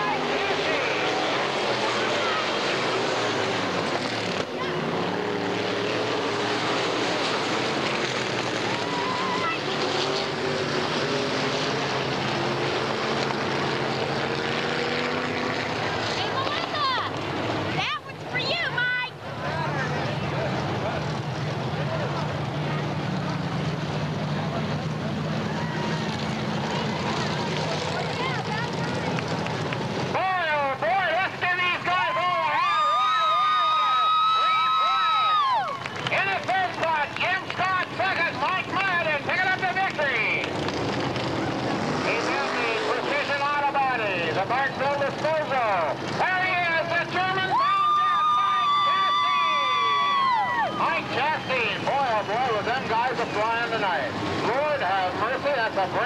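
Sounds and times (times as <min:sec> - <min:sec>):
race car engines running: 0:00.0 - 0:56.0.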